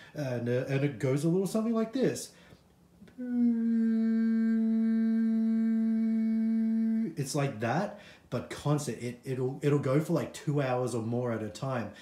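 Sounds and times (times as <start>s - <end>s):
man humming one note: 3.1s - 7.2s.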